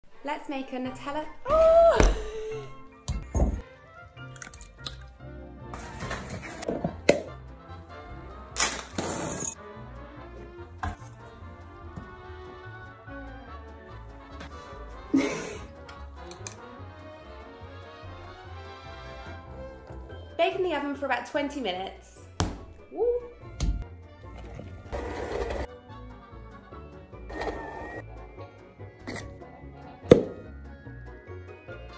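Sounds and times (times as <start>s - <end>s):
background music: 0.1s - 31.9s.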